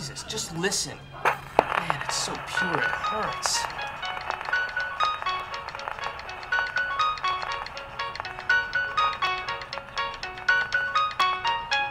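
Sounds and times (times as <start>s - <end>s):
tinny gramophone melody: 1.2s - 11.9s.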